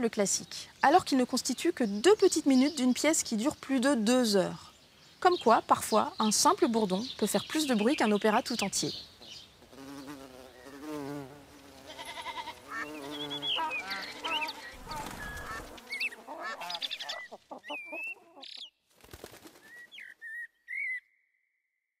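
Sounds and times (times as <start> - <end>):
high chirps and whistles: 19.7 - 21.2.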